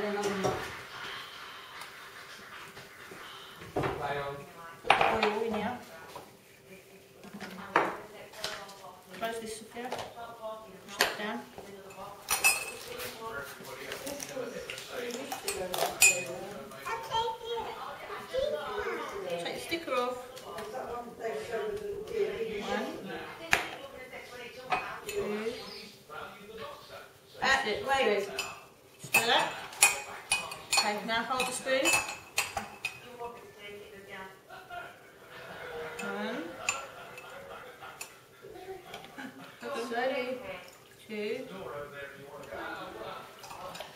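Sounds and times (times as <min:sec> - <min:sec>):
metal spoon clinking in a mug: 0:11.9 - 0:12.9, 0:15.1 - 0:16.4, 0:28.4 - 0:33.0
teaspoon clinking against mug: 0:15.3 - 0:16.3.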